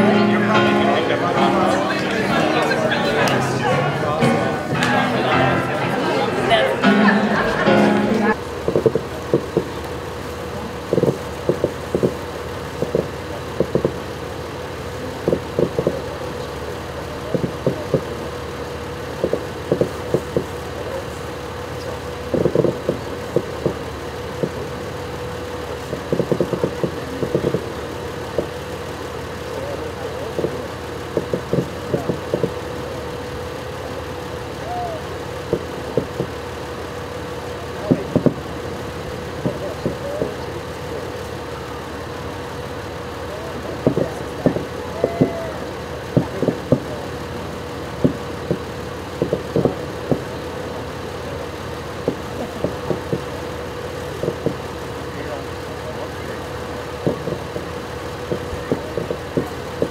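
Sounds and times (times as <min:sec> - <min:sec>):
steady hum: 0:00.0 - 0:08.6
fireworks popping and banging: 0:10.8 - 0:14.1, 0:25.9 - 0:28.6, 0:30.4 - 0:32.6, 0:35.5 - 0:36.4, 0:39.3 - 0:40.6, 0:43.8 - 0:45.4, 0:46.0 - 0:47.0, 0:48.0 - 0:50.5, 0:52.0 - 0:53.5, 0:54.2 - 0:54.8, 0:57.0 - 0:59.9.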